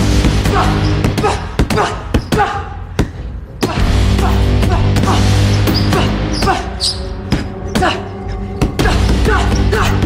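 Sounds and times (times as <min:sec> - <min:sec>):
music with heavy bass: 0:00.0 - 0:01.6, 0:03.7 - 0:10.0.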